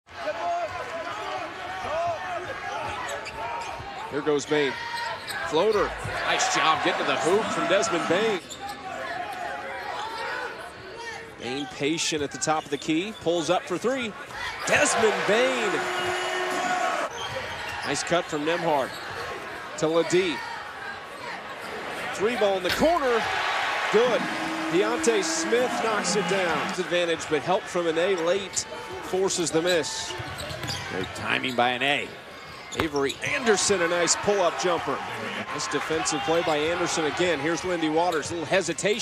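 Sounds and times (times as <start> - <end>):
arena noise: 0.1 - 38.8
sneakers squeaking: 2.7 - 4.0, 4.8 - 6.2, 18.8 - 19.3, 30.1 - 31.7, 32.5 - 33.3.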